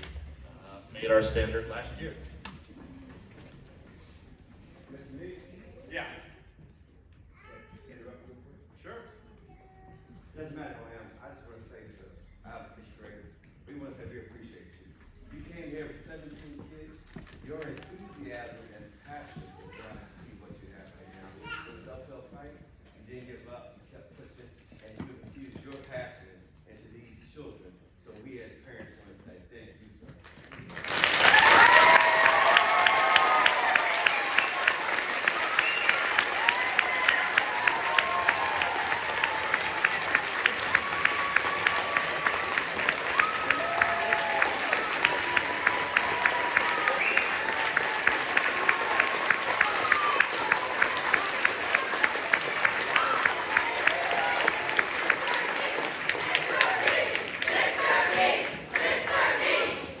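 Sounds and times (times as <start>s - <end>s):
close hand clapping: 30.2s - 59.0s
audience applauding: 30.4s - 59.4s
whoops and shouts: 31.3s - 34.4s
crowd chatter: 32.8s - 60.0s.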